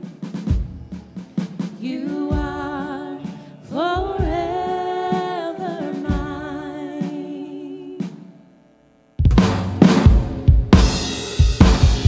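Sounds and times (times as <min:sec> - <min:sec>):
drums: 0:00.0 - 0:08.3, 0:09.2 - 0:12.0
vocalists singing held notes: 0:00.0 - 0:08.5
keyboards: 0:00.0 - 0:12.0.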